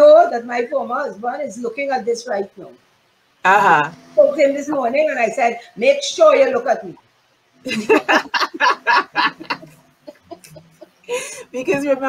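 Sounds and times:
woman laughing: 7.7s - 11.6s.

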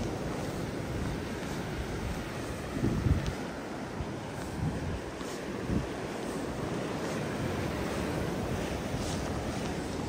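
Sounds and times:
blizzard wind blowing: 0.0s - 10.0s
wind buffeting microphone: 0.0s - 10.0s.

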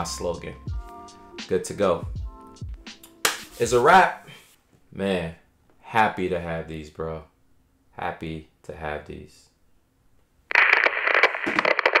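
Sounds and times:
crackling static noise: 10.1s - 12.0s.

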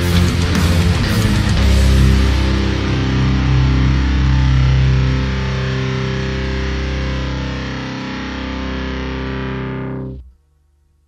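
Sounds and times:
distorted electric guitar chord: 0.0s - 10.3s.

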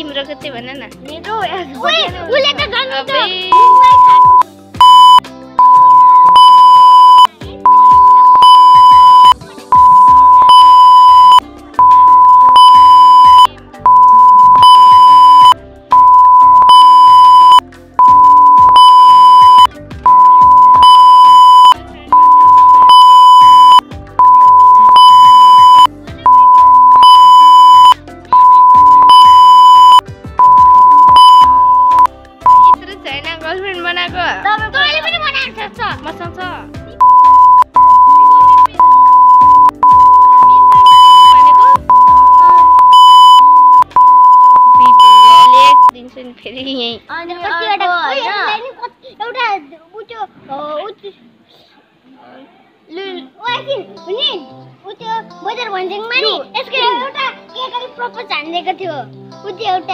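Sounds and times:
background music: 0.0s - 48.8s, 52.9s - 59.9s
electronic censor bleep tone: 3.5s - 32.8s, 37.0s - 45.9s.

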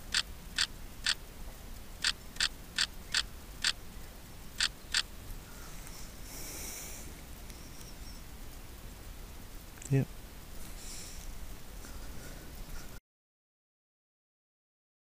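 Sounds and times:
hissing rustle: 0.0s - 13.0s.

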